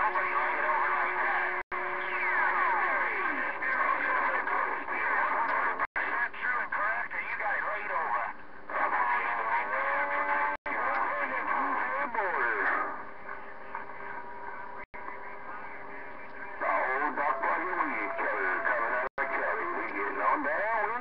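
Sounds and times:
garbled radio voices: 0:00.0 - 0:21.0
radio hiss: 0:00.0 - 0:21.0
whistling radio tones: 0:00.0 - 0:21.0.

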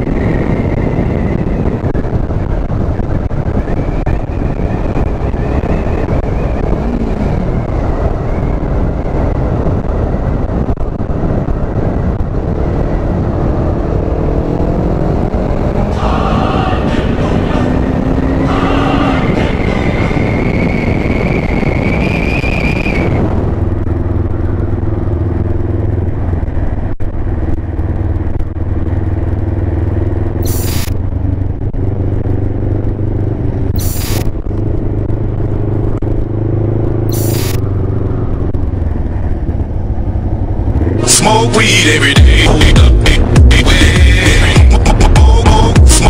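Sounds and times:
wind noise: 0:00.0 - 0:46.0
motorcycle engine running: 0:01.2 - 0:21.1, 0:23.3 - 0:46.0
loud music: 0:15.8 - 0:20.2, 0:41.0 - 0:46.0
short hissing bursts: 0:30.4 - 0:30.8, 0:33.8 - 0:34.2, 0:37.1 - 0:37.6.

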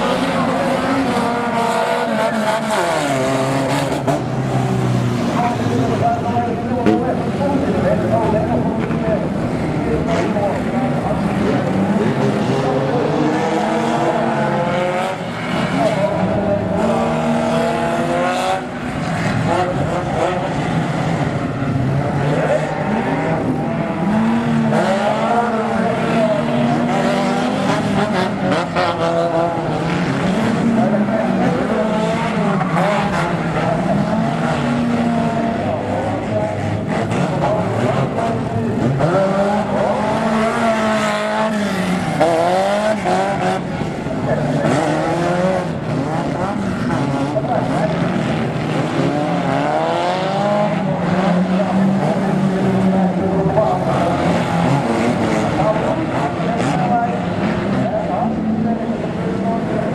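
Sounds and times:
car engines revving hard: 0:00.0 - 0:59.9.

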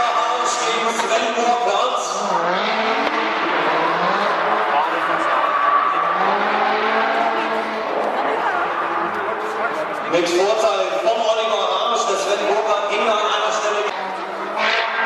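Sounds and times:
distant car engines revving: 0:00.0 - 0:15.0
indistinct voices: 0:00.0 - 0:15.0.

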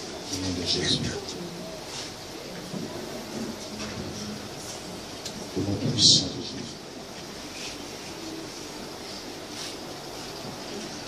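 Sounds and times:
muffled voice through microphone: 0:00.0 - 0:02.2, 0:05.4 - 0:06.9.

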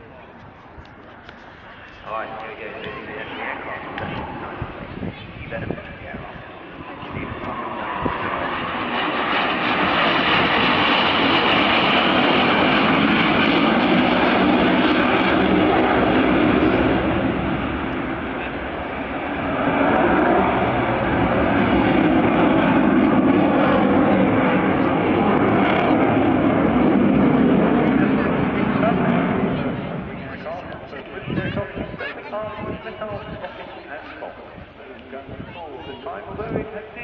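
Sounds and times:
jet aircraft engine rushing: 0:00.0 - 0:37.0.

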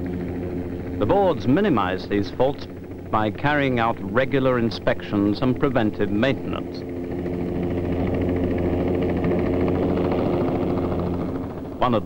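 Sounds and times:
helicopter turbine and rotor: 0:00.0 - 0:12.0.

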